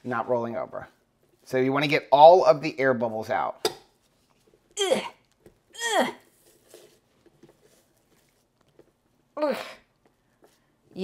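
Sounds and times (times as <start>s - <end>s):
woman grunting with effort: 4.8s - 5.2s, 5.8s - 6.2s.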